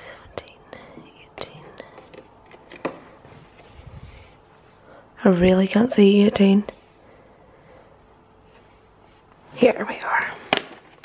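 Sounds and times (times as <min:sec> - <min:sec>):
person whispering: 0:00.0 - 0:02.1, 0:09.6 - 0:10.5.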